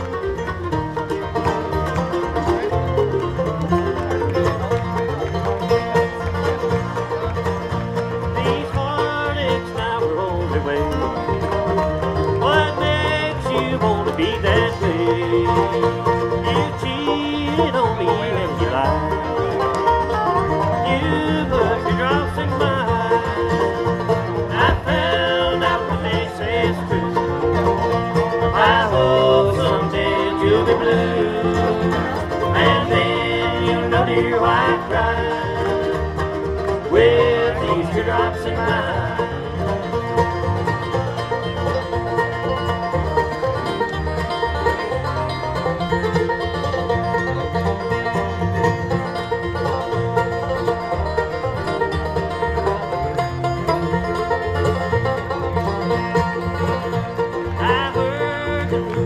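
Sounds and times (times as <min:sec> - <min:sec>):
banjo: 0:00.0 - 0:59.0
bluegrass band playing: 0:00.0 - 0:59.0.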